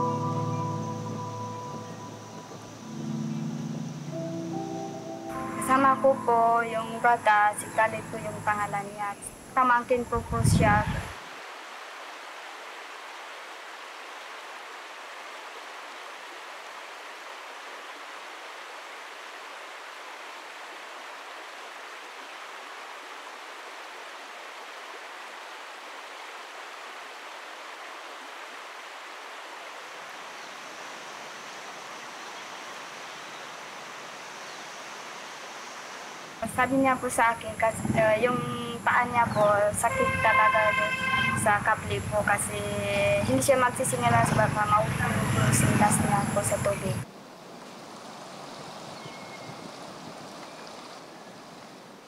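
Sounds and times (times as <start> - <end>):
rushing river water: 0.0 - 52.0.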